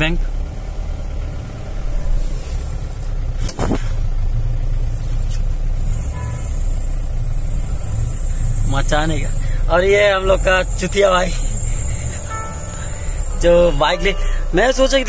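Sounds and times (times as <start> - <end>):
van engine rumbling: 0.0 - 15.0.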